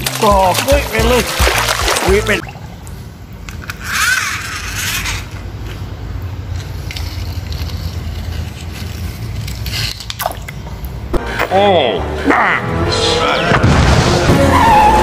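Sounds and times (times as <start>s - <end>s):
water sloshing: 0.0s - 3.2s.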